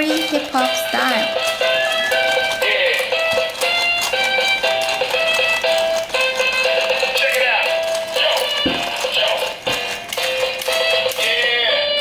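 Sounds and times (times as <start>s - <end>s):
toy playing electronic tune: 0.0s - 12.0s.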